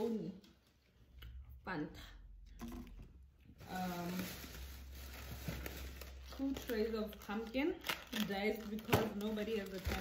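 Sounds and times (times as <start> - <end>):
plastic packaging rustling: 3.5 - 10.0.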